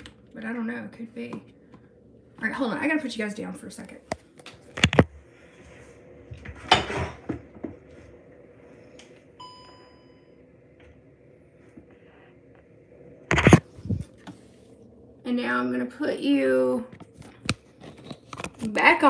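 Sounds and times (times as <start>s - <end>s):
low steady hum: 0.0s - 19.0s
short electronic beep: 9.4s - 10.4s.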